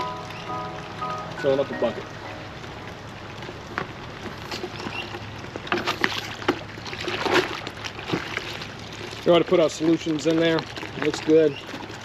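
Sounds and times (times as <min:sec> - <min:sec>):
low steady hum: 0:00.0 - 0:11.0
suds sloshing and splashing: 0:02.5 - 0:12.0.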